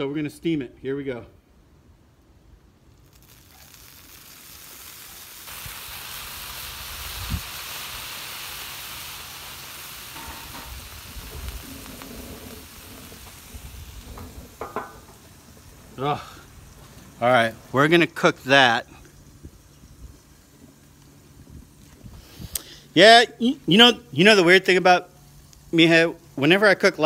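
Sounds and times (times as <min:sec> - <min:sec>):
water sizzling on a hot griddle: 0:02.9 - 0:22.6, 0:23.7 - 0:27.0.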